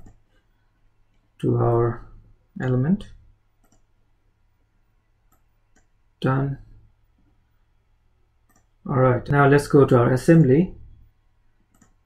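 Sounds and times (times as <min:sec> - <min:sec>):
computer mouse clicks: 0:00.0 - 0:00.2, 0:03.0 - 0:03.9, 0:05.3 - 0:06.0, 0:08.4 - 0:08.7, 0:11.7 - 0:12.0.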